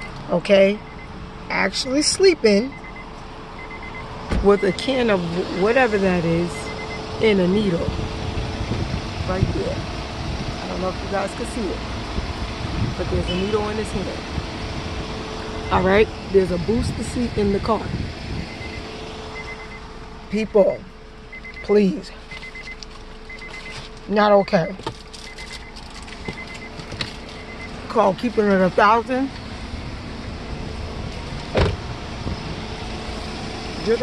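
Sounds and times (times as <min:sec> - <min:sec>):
car engine idling: 0:00.0 - 0:34.0
faint high beep: 0:13.3 - 0:13.6.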